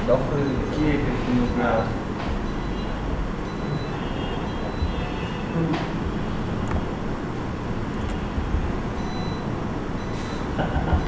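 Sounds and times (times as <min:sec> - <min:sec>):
low background rumble: 0:02.4 - 0:11.0.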